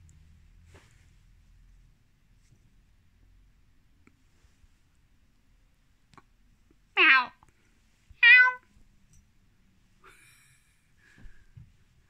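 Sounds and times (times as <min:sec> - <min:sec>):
cat meowing: 0:07.0 - 0:07.4, 0:08.2 - 0:08.7.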